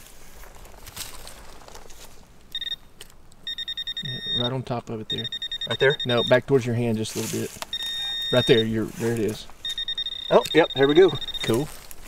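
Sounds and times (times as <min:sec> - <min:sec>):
metal detector pinpointer beeping: 0:02.5 - 0:06.4, 0:07.7 - 0:11.8
scraping of soil: 0:06.8 - 0:09.6.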